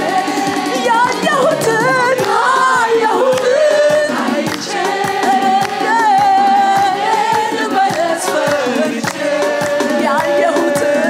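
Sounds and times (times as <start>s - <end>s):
group singing: 0.0s - 11.0s
steady beat: 0.0s - 11.0s.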